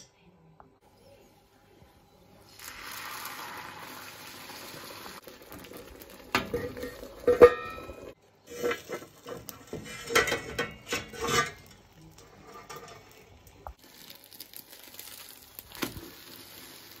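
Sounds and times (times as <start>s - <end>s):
eggs sizzling in frying pan: 2.4s - 10.1s, 11.2s - 17.0s
steel lid clanging on pan: 6.4s - 11.7s
metal spatula scraping pan: 6.5s - 13.2s.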